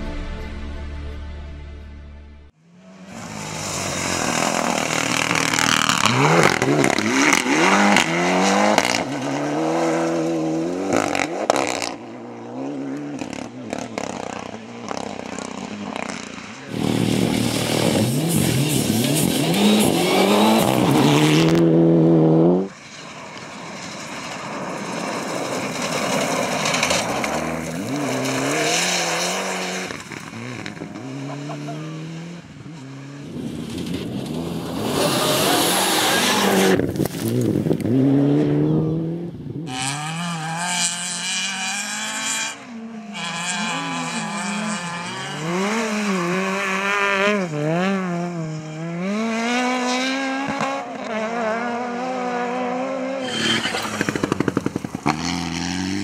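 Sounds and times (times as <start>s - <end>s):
rally car engines at full throttle: 2.5s - 56.0s.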